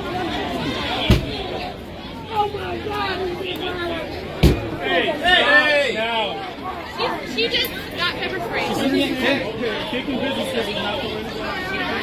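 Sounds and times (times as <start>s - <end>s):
people talking: 0.0s - 12.0s.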